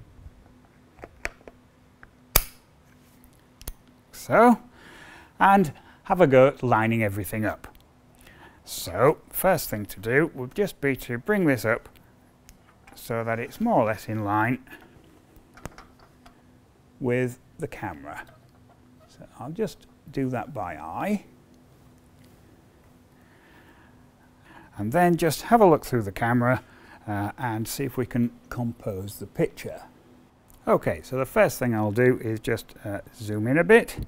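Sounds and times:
loud sharp click: 0:02.3 - 0:02.7
metal stand clicks and knocks: 0:15.5 - 0:16.4.

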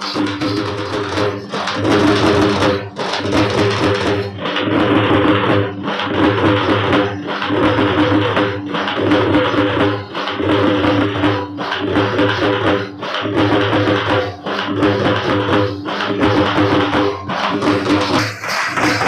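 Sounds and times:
folk dance music with drums: 0:00.0 - 0:19.0.

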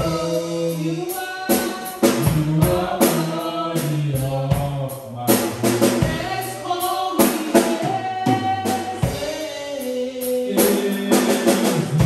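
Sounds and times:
woman singing into a microphone: 0:00.0 - 0:03.8, 0:05.7 - 0:11.6
bass: 0:00.0 - 0:12.0
drum kit beat: 0:00.0 - 0:12.0.

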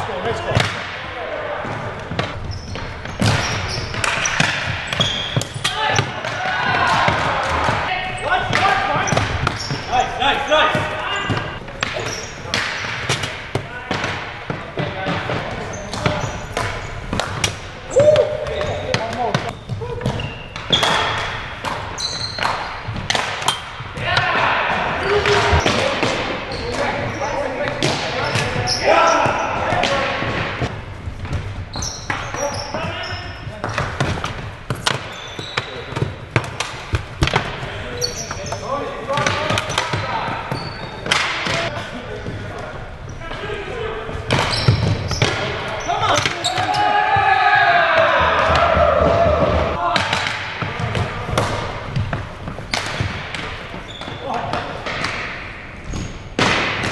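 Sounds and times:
players shouting in hall: 0:05.7 - 0:09.1, 0:46.0 - 0:50.2.

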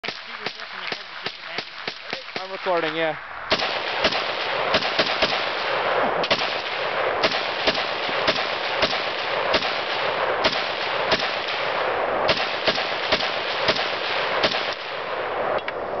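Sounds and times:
rifle shots echoing: 0:00.0 - 0:15.6.

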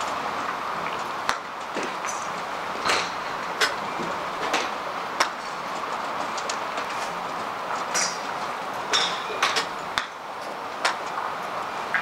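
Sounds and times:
driving range background noise: 0:00.0 - 0:12.0.

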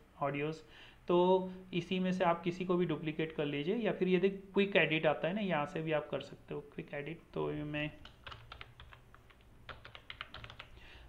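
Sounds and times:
typing on computer keyboard: 0:08.0 - 0:10.8.

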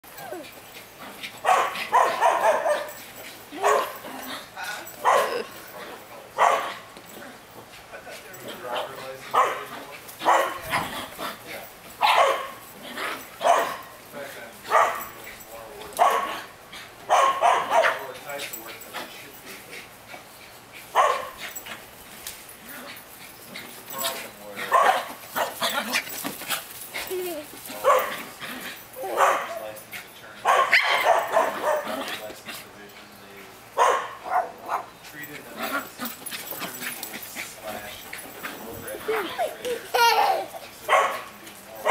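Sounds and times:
small dog barking: 0:01.4 - 0:02.9, 0:03.6 - 0:04.0, 0:05.0 - 0:05.5, 0:06.4 - 0:06.8, 0:09.3 - 0:10.9, 0:12.0 - 0:12.6, 0:13.4 - 0:13.9, 0:14.7 - 0:15.2, 0:16.0 - 0:16.4, 0:17.1 - 0:18.0, 0:20.9 - 0:21.4, 0:24.6 - 0:25.8, 0:27.8 - 0:28.2, 0:29.1 - 0:29.6, 0:30.4 - 0:31.9, 0:33.8 - 0:34.9, 0:40.8 - 0:41.9.

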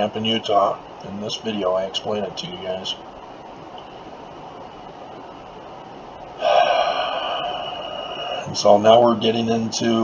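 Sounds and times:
faint steady hiss: 0:00.0 - 0:10.0
man gasping: 0:06.4 - 0:08.6.

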